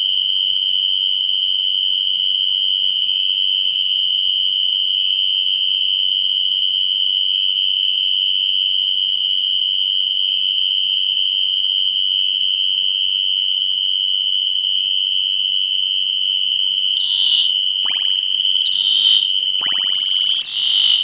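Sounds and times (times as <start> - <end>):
crickets chirping: 17.0 - 18.1, 18.7 - 21.0.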